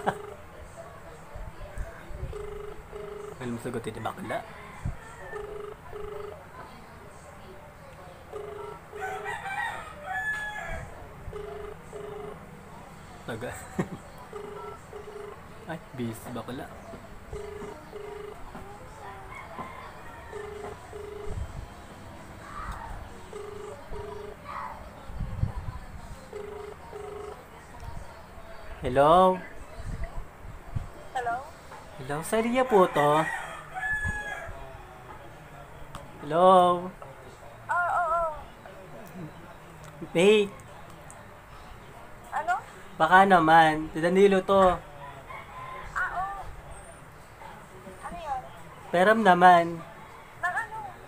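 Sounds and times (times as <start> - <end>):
telephone ringback tone: 0.0 - 0.5, 2.2 - 3.9, 5.2 - 6.5, 8.3 - 9.3, 11.3 - 12.5, 14.3 - 16.3, 17.3 - 18.6, 20.2 - 21.6, 23.2 - 24.4, 26.3 - 27.5
rooster crowing: 4.3 - 6.2, 8.4 - 12.3, 17.4 - 21.4, 32.5 - 34.6, 45.0 - 46.4.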